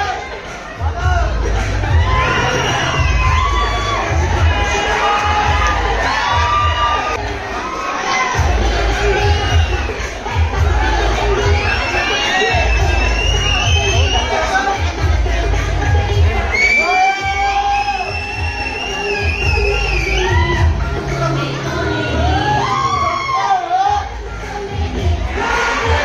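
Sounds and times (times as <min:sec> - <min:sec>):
dance music with bass beat: 0:00.0 - 0:07.5, 0:08.4 - 0:26.0
audience cheering and shouting: 0:00.0 - 0:26.0.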